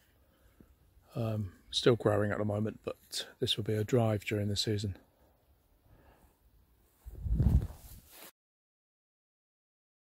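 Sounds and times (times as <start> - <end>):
wind buffeting microphone: 7.1 - 8.0.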